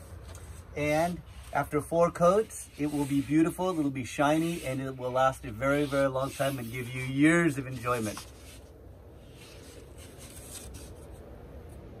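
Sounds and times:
rubbing and rustling: 0.0 - 11.3
soft scrapes: 0.0 - 11.3.

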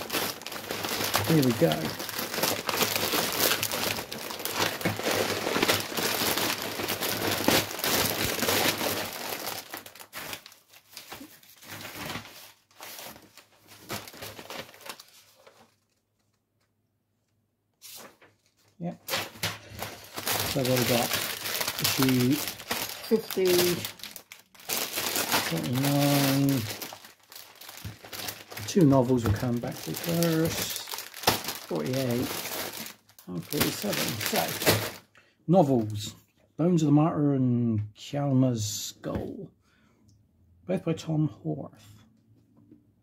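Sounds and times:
paper and plastic crinkling: 0.0 - 16.4, 17.8 - 35.1.

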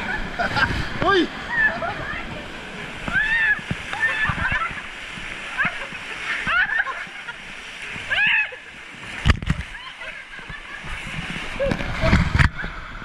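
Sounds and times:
water churning and splashing: 0.0 - 13.0
people shouting: 3.1 - 4.6, 8.1 - 8.6.

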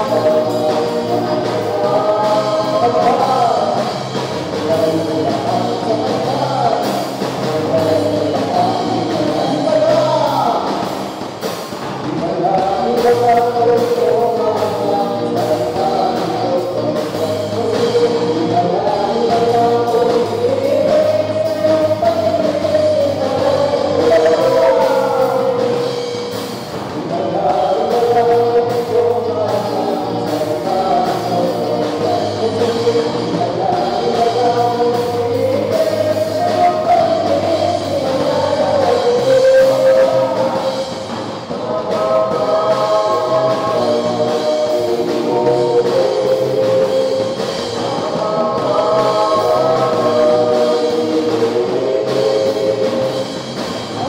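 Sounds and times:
drums: 0.0 - 54.0
electric guitars: 0.0 - 54.0
voices singing together: 0.0 - 54.0.

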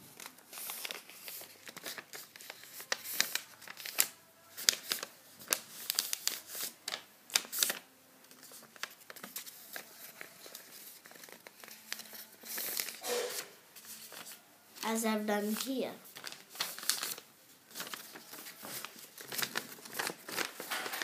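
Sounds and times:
paper rustling and crackling: 0.0 - 21.0.

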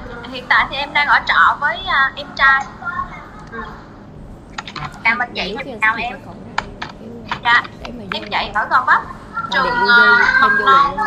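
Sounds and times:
woman's voice: 0.2 - 2.7, 4.7 - 11.0
keyboard keystrokes: 4.5 - 5.0.

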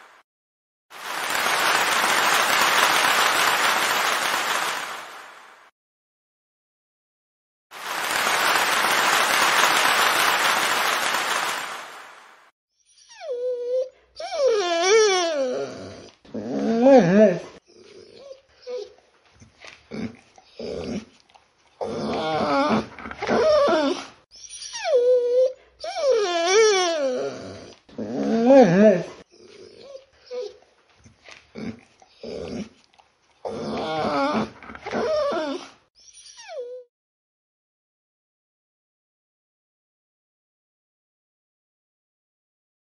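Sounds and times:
applause: 0.0 - 0.2, 0.9 - 5.7, 7.7 - 12.5
dog grunts: 31.5 - 32.8.

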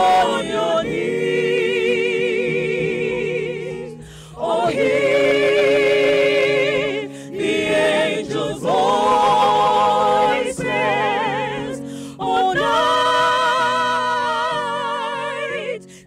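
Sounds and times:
mixed choir singing a carol: 0.0 - 16.0.

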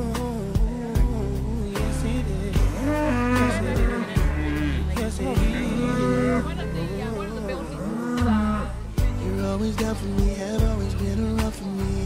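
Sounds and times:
song playing in background: 0.0 - 12.0
cattle mooing: 2.8 - 6.8, 7.6 - 8.9.

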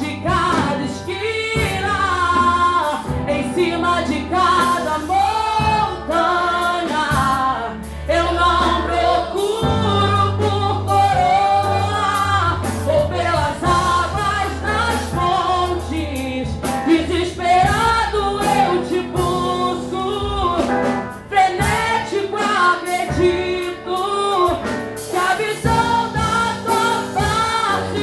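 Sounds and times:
instrumental backing music: 0.0 - 28.0
woman singing into microphone: 0.0 - 28.0.

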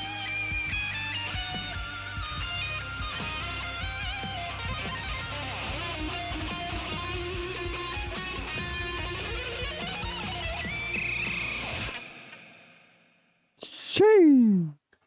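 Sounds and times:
bass and drums backing track: 0.0 - 11.9
electric guitar lead: 0.0 - 12.8.

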